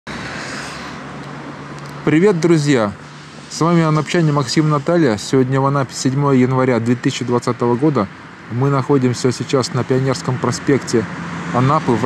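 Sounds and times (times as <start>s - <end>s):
cars passing: 0.1s - 12.0s.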